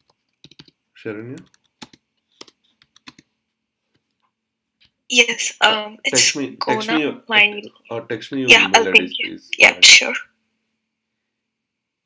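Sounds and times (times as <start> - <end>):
computer keyboard keystrokes: 0.0 - 3.3.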